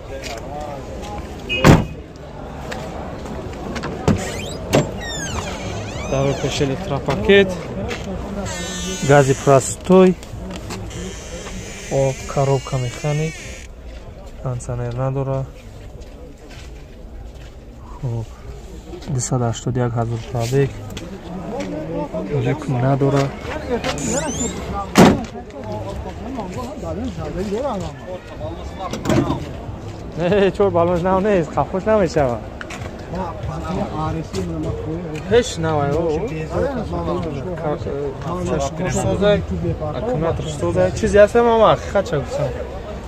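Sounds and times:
car door slamming: 0:01.5 - 0:02.0, 0:24.9 - 0:25.3
car door squeaking open: 0:01.5 - 0:02.0, 0:03.9 - 0:06.9, 0:08.4 - 0:09.9, 0:10.7 - 0:13.7, 0:23.9 - 0:25.2.

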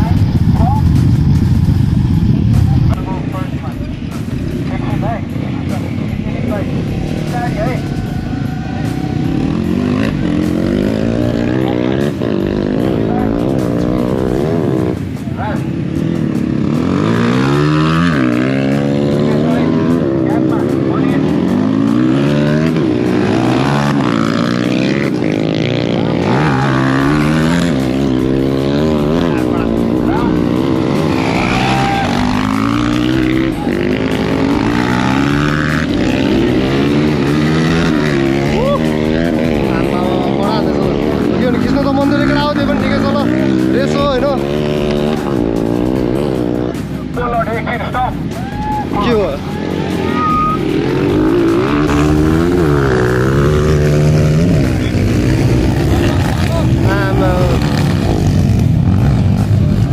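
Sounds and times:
dirt bike engines revving: 0:00.0 - 0:59.9.

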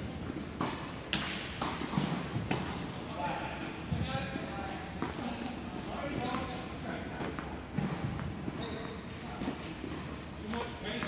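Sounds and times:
tennis balls struck and bouncing: 0:00.2 - 0:02.9, 0:06.1 - 0:08.6.

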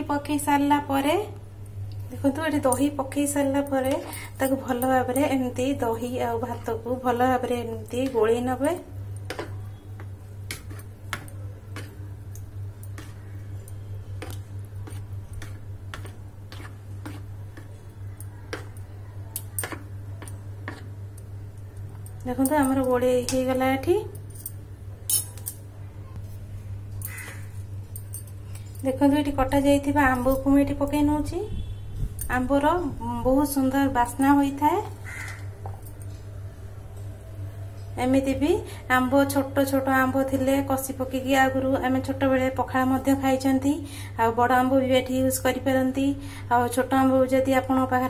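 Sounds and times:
steady low hum: 0:00.0 - 0:48.0
spoon clicking and scraping bowl: 0:03.7 - 0:05.4, 0:07.6 - 0:23.5, 0:24.1 - 0:25.6.

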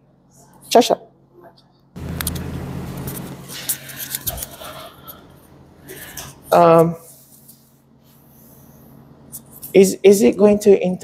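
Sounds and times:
low hum: 0:02.0 - 0:09.7.

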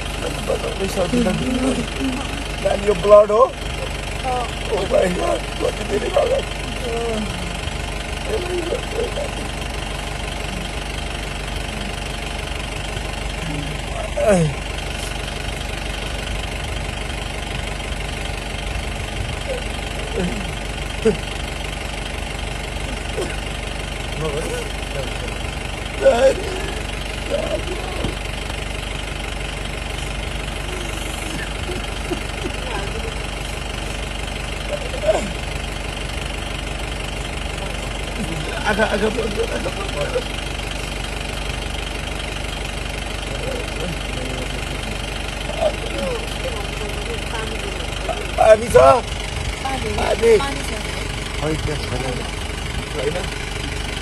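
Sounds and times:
low mechanical hum: 0:00.0 - 0:54.0
bursts of people's voices: 0:43.2 - 0:53.4.

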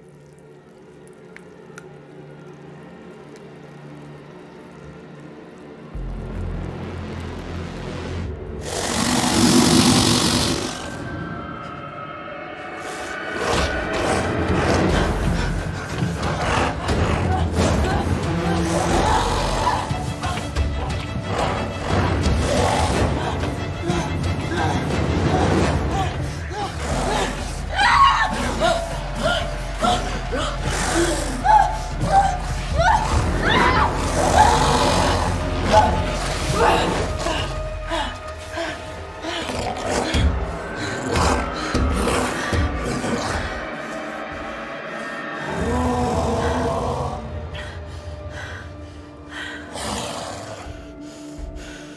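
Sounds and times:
tense music score: 0:00.0 - 0:51.9
creature roaring growl: 0:08.6 - 0:11.1, 0:33.0 - 0:37.6.

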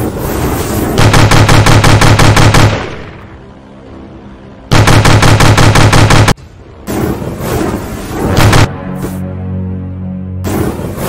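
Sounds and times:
automatic gunfire: 0:01.0 - 0:03.0, 0:04.7 - 0:06.4.

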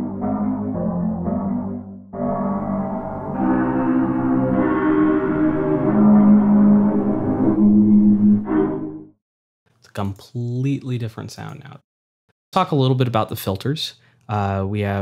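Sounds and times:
layered bass drone: 0:00.0 - 0:08.8.

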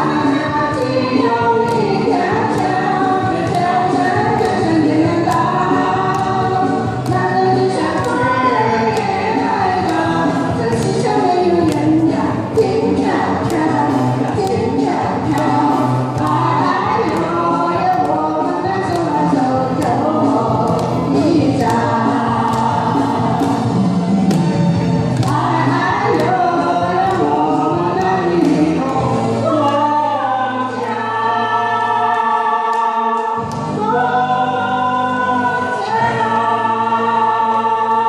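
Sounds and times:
man and woman singing duet: 0:00.0 - 0:23.8, 0:25.2 - 0:38.0
backing track: 0:00.0 - 0:38.0.

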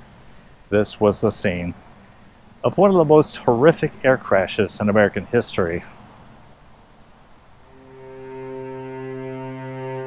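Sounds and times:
low bowed-string notes: 0:07.6 - 0:10.0.

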